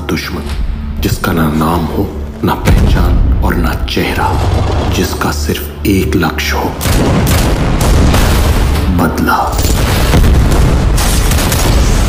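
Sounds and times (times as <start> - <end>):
music: 0.0 - 12.0
heavy low rumble: 0.4 - 11.0
explosion blasts: 2.6 - 5.4, 6.8 - 12.0.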